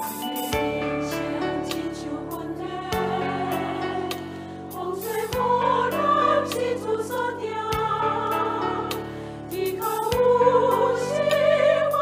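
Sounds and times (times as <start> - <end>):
voices singing with vibrato: 1.0 - 12.0.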